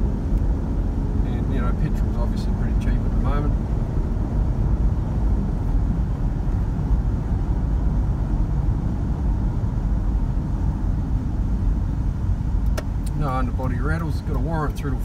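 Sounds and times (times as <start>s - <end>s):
minivan cabin road rumble: 0.0s - 15.0s.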